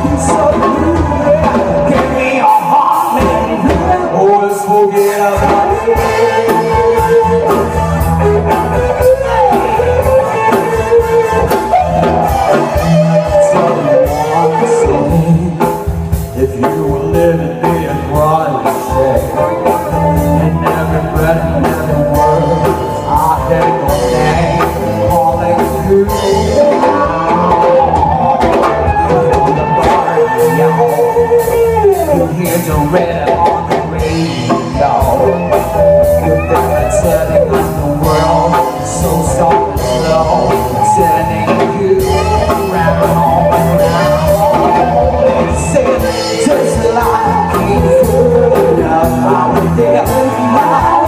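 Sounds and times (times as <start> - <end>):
bass: 0.0 - 51.0
drum kit beat: 0.0 - 51.0
electric guitar: 0.0 - 51.0
keyboard: 0.0 - 51.0.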